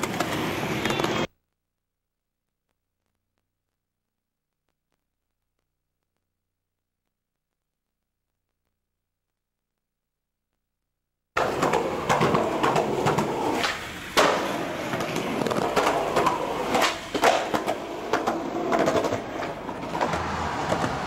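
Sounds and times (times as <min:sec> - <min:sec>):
skateboard wheels rolling on concrete: 0:00.0 - 0:01.3, 0:11.4 - 0:21.0
skateboard popping and landing clacks: 0:11.4 - 0:21.0.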